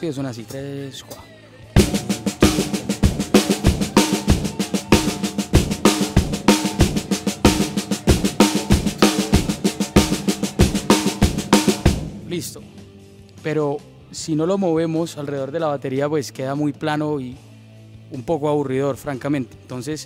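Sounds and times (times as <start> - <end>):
snare drum notes: 1.8 - 12.6
bass drum beats: 1.8 - 13.0.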